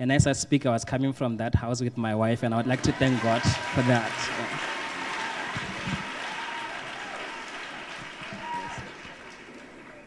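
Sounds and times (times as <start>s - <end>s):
congregation applauding: 2.6s - 10.0s.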